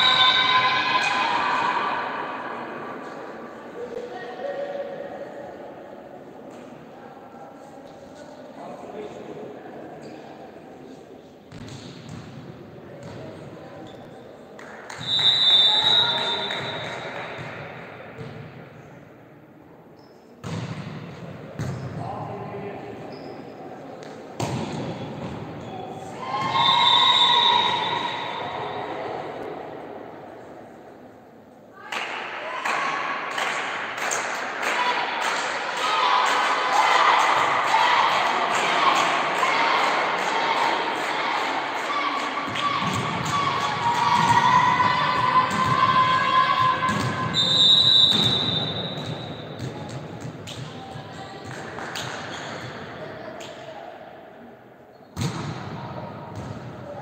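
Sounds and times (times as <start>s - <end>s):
people shouting and cheering: 0.0s - 2.8s, 34.2s - 47.5s.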